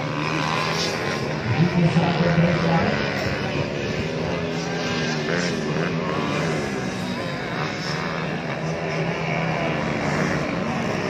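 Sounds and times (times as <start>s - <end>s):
motocross bike engines: 0.0s - 11.0s.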